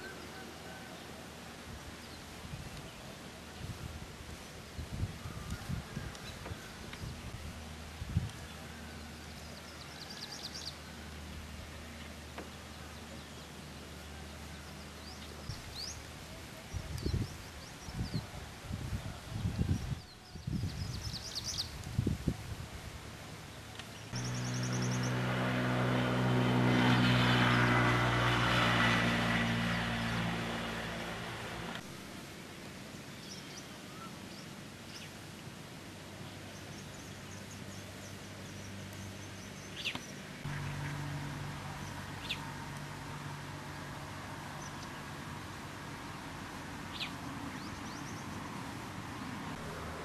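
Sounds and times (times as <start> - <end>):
birds chirping: 23.4 - 25.4, 36.2 - 42.5, 46.8 - 50.0
vehicle engine humming: 23.8 - 32.1, 38.4 - 50.0.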